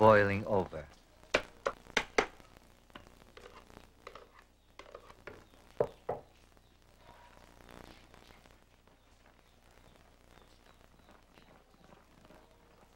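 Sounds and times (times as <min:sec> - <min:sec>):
faint background hiss: 0:00.0 - 0:12.9.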